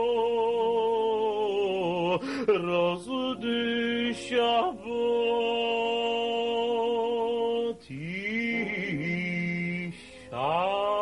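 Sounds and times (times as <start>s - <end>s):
man singing a chant: 0.0s - 11.0s.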